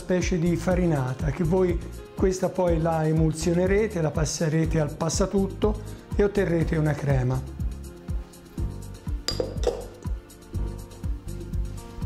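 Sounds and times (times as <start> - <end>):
background music with low beat: 0.0 - 12.0
kitchenware clinking: 9.3 - 10.0.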